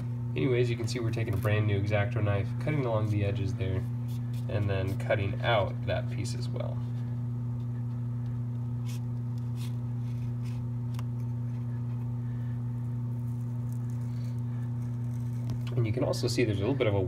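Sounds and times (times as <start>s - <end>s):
steady low hum: 0.0s - 17.0s
knife cutting paper: 8.8s - 11.9s, 13.2s - 15.8s.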